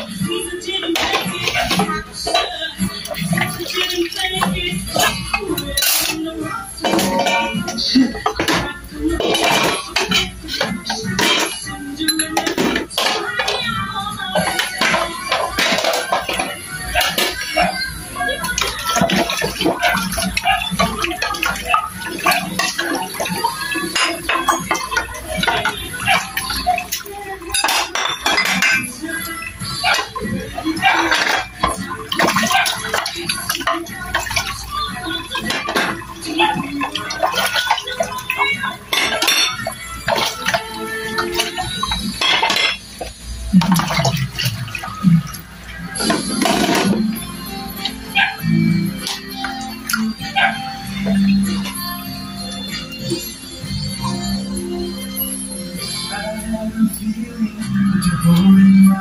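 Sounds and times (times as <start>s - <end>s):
background music: 0.0s - 59.0s
ceramic plates clinking: 0.8s - 54.5s
water splashing in basin: 0.9s - 6.2s, 14.3s - 54.2s.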